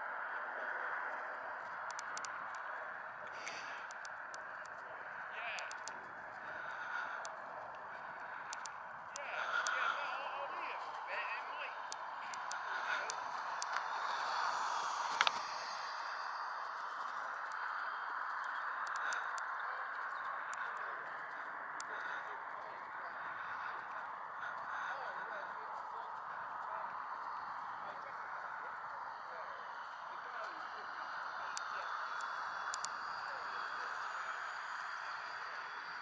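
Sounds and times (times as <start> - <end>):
distant indistinct voices: 0.0 - 36.0
outdoor background noise: 0.0 - 36.0
faint clicks: 1.1 - 9.8, 15.0 - 15.4, 18.2 - 22.9, 31.5 - 33.0.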